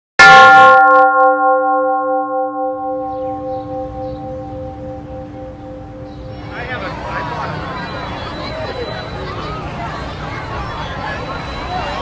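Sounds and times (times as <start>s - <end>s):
deep bell ringing: 0.2s - 8.2s.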